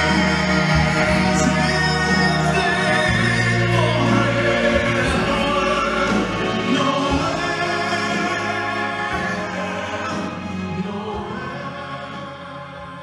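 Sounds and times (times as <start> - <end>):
choir singing: 0.0 - 13.0
man singing into a microphone: 0.0 - 13.0
orchestra playing: 0.0 - 13.0.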